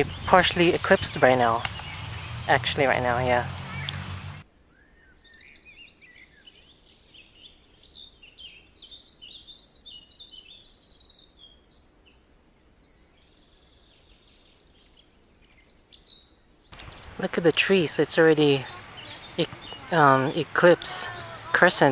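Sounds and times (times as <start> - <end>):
small birds chirping and trilling: 0.0 - 21.9.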